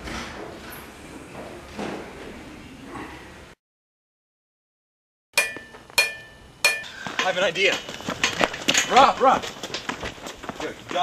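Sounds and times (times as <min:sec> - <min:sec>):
ringing metallic hits: 0:05.4 - 0:08.9.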